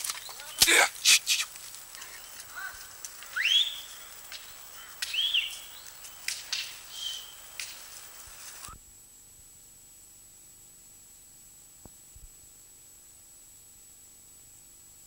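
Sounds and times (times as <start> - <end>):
low steady hiss: 0.0 - 15.0
whistled calls: 0.1 - 7.6
scattered clicks: 4.3 - 6.8, 7.6 - 7.9.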